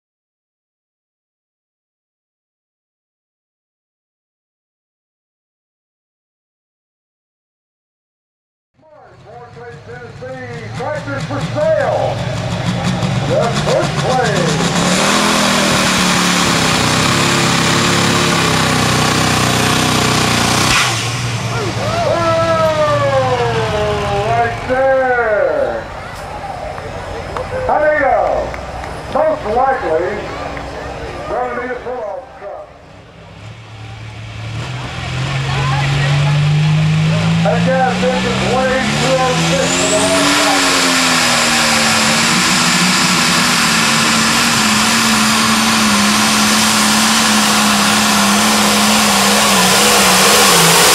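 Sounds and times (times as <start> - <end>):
man speaking over public address: 8.8 - 12.4, 13.1 - 14.7, 21.5 - 25.9, 26.9 - 32.9, 37.3 - 40.8
diesel tractor idling: 8.8 - 50.9.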